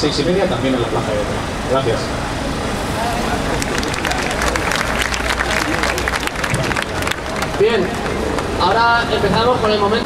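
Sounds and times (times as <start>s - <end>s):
crowd voices: 0.0s - 10.0s
crowd applause: 2.9s - 9.1s.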